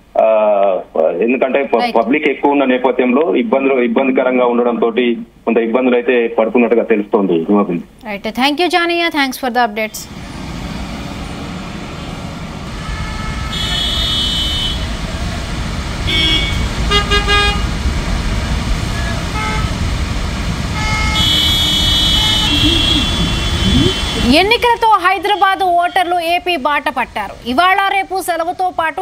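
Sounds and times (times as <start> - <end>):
traffic engines rumbling: 8.8 - 29.0
car horns honking: 11.9 - 15.1, 16.0 - 17.8, 19.0 - 19.9, 20.7 - 26.3.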